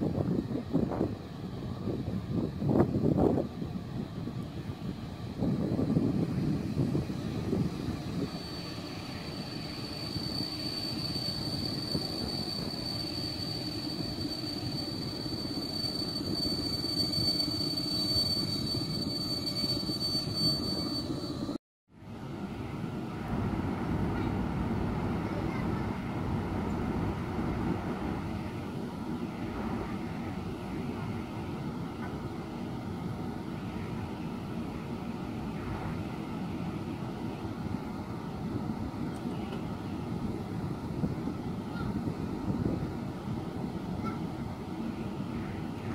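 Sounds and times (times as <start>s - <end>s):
train rumble: 0.0s - 45.9s
thin high whine: 6.9s - 21.6s.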